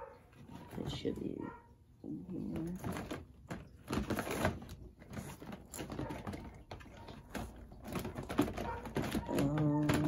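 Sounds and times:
plastic figures clicking and rattling: 2.5s - 10.0s.

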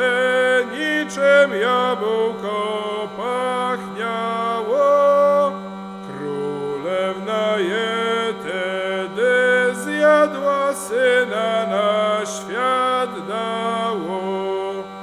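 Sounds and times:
hurdy-gurdy melody over drone: 0.0s - 15.0s.

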